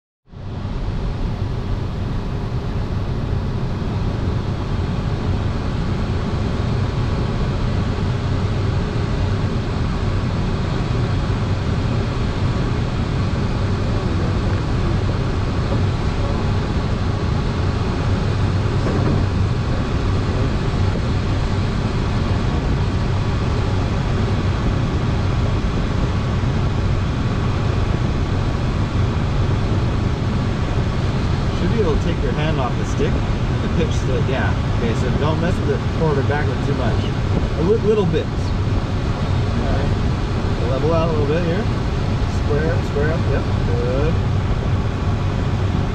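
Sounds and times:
air rushing around glider: 0.3 - 45.9.

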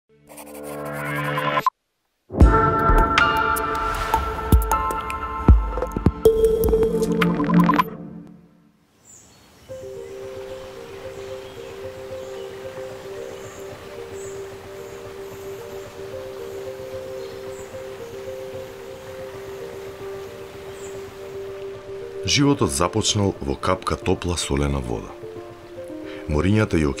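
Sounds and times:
outdoor background hiss: 1.7 - 2.4, 8.3 - 27.0
soft ambient music: 2.4 - 8.7, 9.7 - 27.0.

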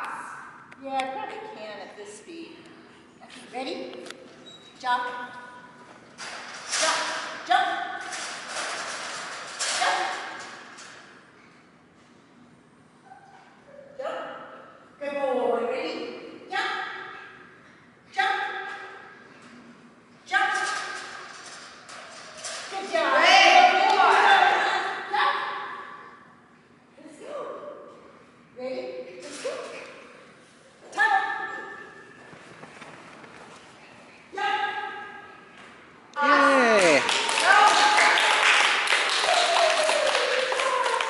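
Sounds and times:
person calling out echoing: 36.2 - 37.2.

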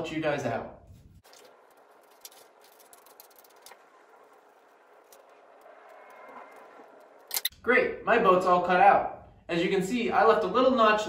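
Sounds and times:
paper rustle: 1.0 - 5.6.

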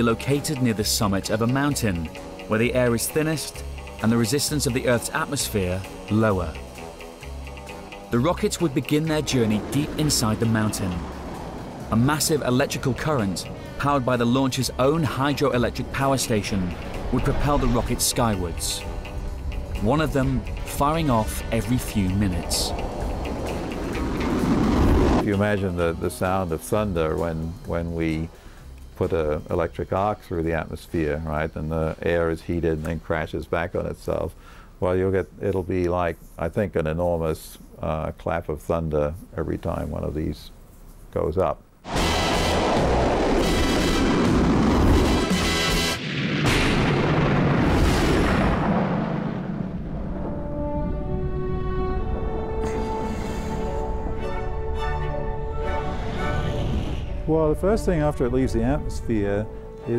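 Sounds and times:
held orchestral notes: 6.2 - 25.4, 50.1 - 59.9
rocket rumbling whoosh: 8.9 - 25.2, 41.9 - 54.0.

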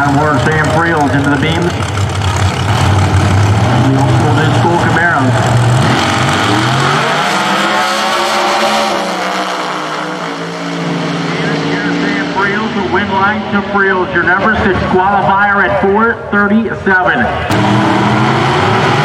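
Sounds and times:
drag car engines racing: 0.0 - 19.0.

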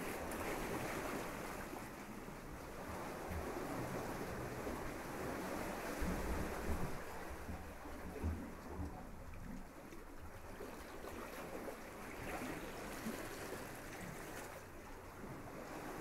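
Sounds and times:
wind rumble on microphone: 0.0 - 10.5.

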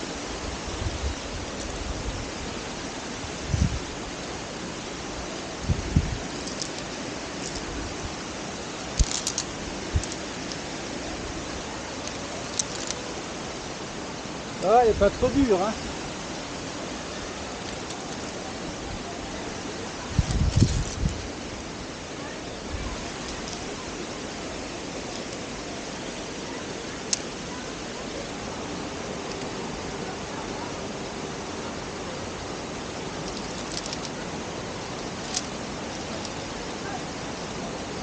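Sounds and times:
waterfall rushing: 0.0 - 38.0
wind buffeting microphone: 0.4 - 4.1, 5.5 - 6.4, 18.6 - 21.8.

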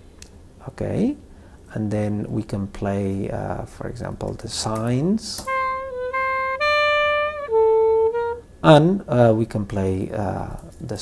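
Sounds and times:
synthesized saxophone notes: 5.4 - 8.6.

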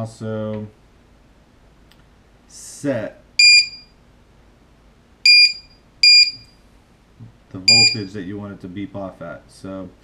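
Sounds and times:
short high buzzer beeps: 5.3 - 6.5, 7.7 - 8.1.

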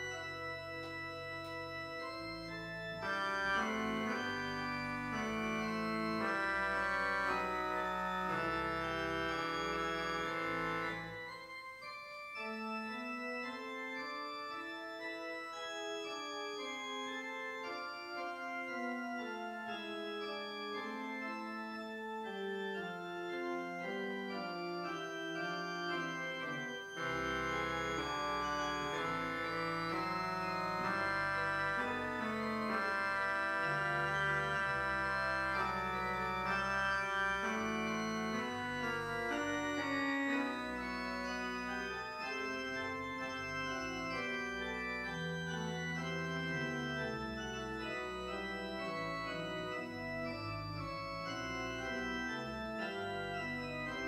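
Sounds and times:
organ playing sustained chords: 0.0 - 54.0.

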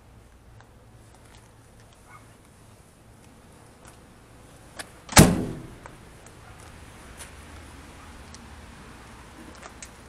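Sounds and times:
steel van door latch clunk: 5.1 - 5.9.

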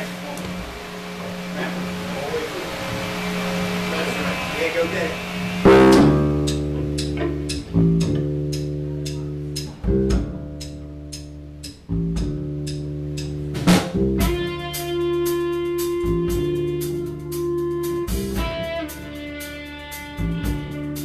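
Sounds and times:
live rock band: 5.2 - 21.0
steady tick: 5.9 - 14.4.

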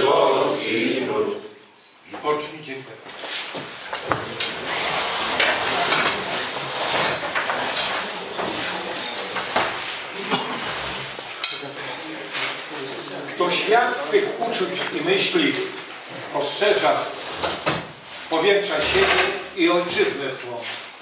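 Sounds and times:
chairs scraping: 3.1 - 20.9
crockery and cutlery clinking: 5.4 - 12.0.

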